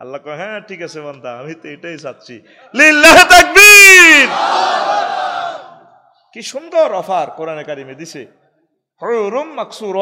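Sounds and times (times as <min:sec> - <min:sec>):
man speaking amplified: 0:00.0 - 0:04.4, 0:06.3 - 0:10.0
preacher shouting amplified: 0:02.7 - 0:05.6
crowd shouting: 0:03.6 - 0:06.0.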